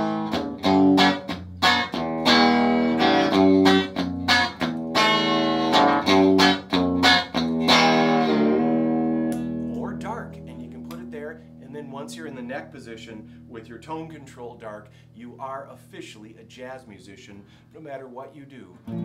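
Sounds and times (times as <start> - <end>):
electric guitar chords: 0.0 - 13.6, 18.8 - 19.0
plucked guitar notes: 0.0 - 15.0, 18.8 - 19.0.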